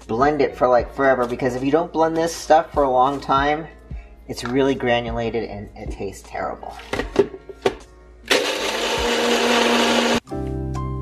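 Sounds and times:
blender motor blending ice: 8.3 - 10.2.

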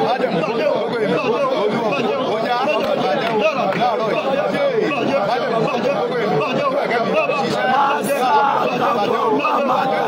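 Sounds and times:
several voices talking: 0.0 - 10.0.

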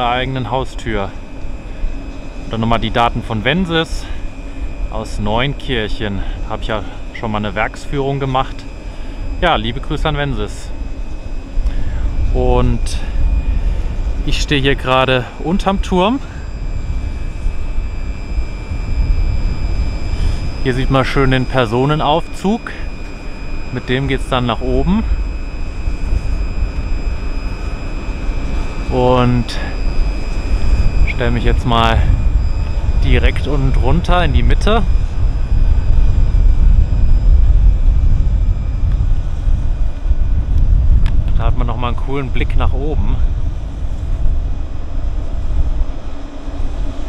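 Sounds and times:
faint steady high tones: 0.0 - 40.6
faint high-pitched whine: 0.0 - 47.0
wind buffeting microphone: 0.0 - 47.0.

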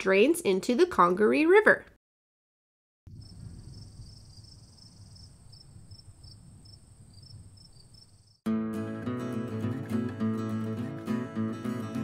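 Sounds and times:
insects trilling: 3.1 - 8.4
short insect chirps: 3.1 - 8.4.

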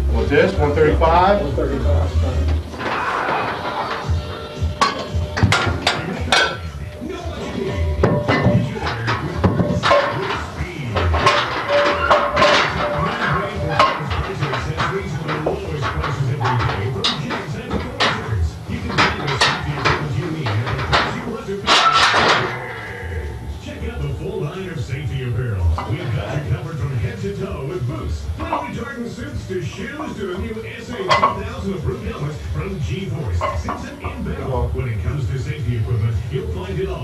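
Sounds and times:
indistinct voices: 0.0 - 37.0
music: 0.0 - 37.0
weight plates clanking on barbell: 2.4 - 34.6.

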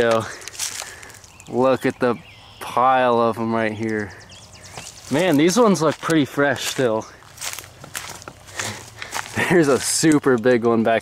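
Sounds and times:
footsteps through grass and leaves: 0.0 - 1.9, 3.8 - 10.3
undergrowth rustling: 0.0 - 11.0.

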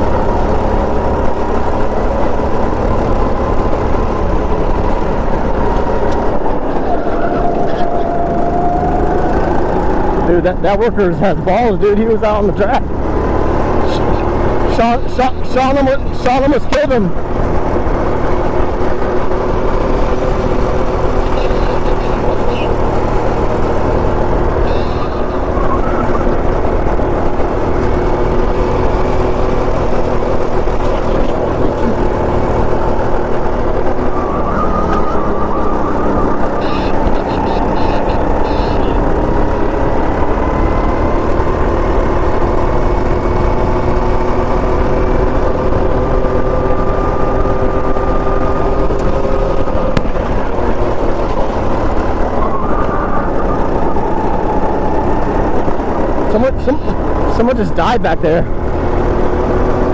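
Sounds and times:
go-kart motor whine: 0.0 - 59.9.

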